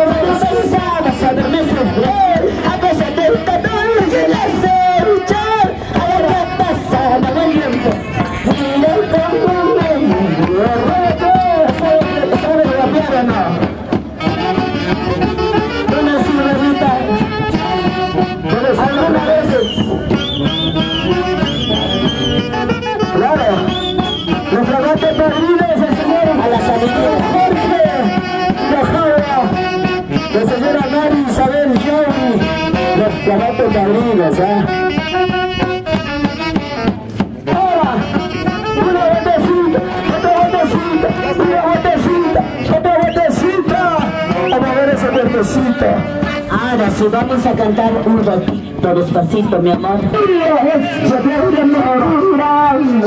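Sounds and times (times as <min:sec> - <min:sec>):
drum: 0:00.0 - 0:52.3
crowd voices: 0:00.0 - 0:53.0
wind instrument melody: 0:00.0 - 0:53.0.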